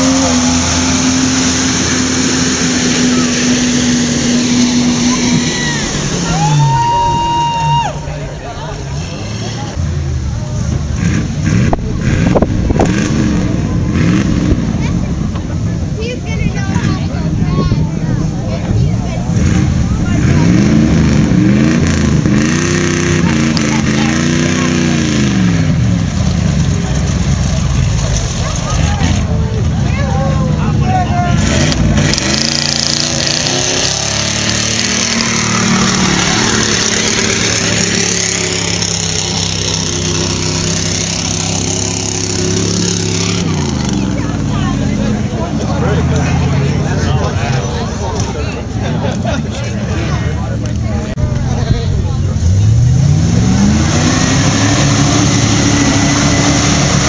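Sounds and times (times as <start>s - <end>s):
pickup truck engine revving: 0.0s - 57.0s.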